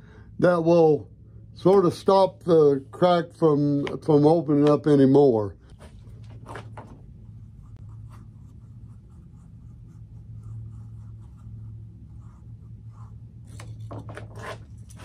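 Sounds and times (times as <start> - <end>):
steady low hum: 0.0 - 15.0
stick scratching and rubbing epoxy: 7.5 - 15.0.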